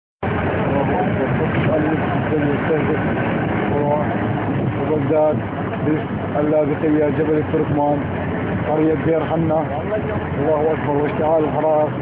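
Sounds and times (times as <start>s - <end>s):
steady rushing noise: 0.2s - 12.0s
faint voices: 0.4s - 12.0s.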